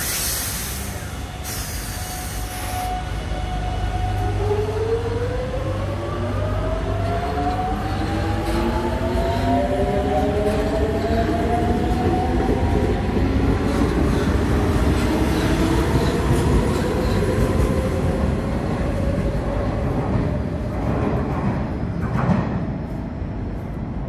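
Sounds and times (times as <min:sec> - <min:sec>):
rumble of wheels on rail: 0:00.0 - 0:24.0.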